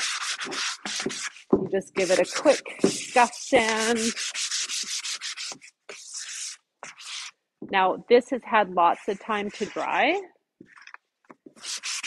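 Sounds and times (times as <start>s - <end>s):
foam pad sanding strokes: 2.0s - 7.3s.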